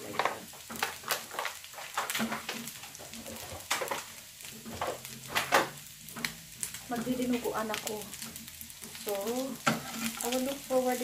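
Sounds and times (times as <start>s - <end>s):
food sizzling in a pan: 0.0s - 11.0s
spitting oil crackling and popping: 0.0s - 11.0s.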